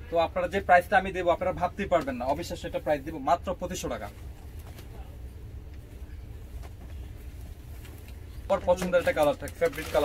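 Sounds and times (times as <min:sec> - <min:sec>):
man talking: 0:08.5 - 0:10.0.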